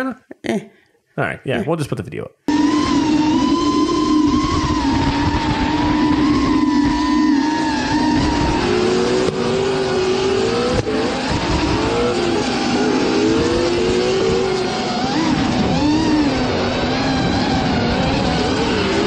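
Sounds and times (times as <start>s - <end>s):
car engines revving: 2.5s - 19.0s.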